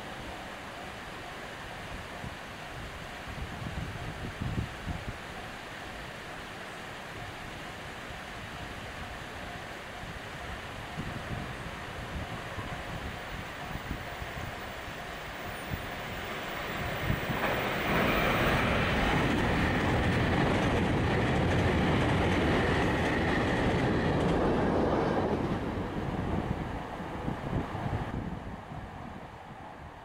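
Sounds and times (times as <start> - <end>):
train passing on rails: 0.0 - 30.0.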